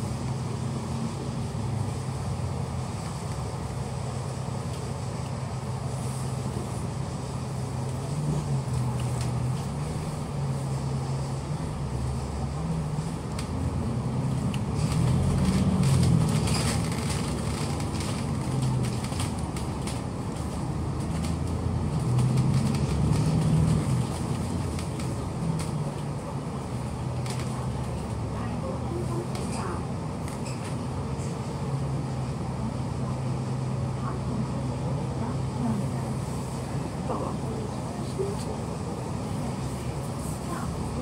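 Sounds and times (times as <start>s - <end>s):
bus engine idling and accelerating: 0.0s - 41.0s.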